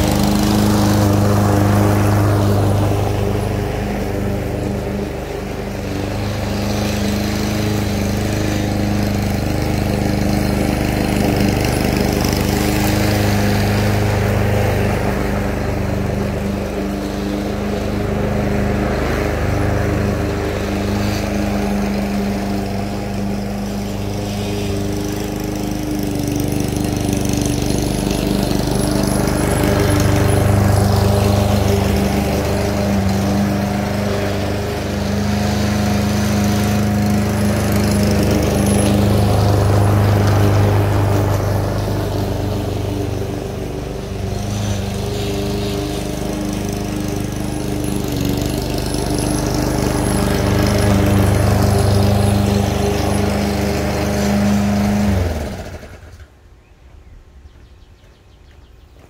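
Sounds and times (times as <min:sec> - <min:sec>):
lawn mower cutting grass: 0:00.0 - 0:56.4.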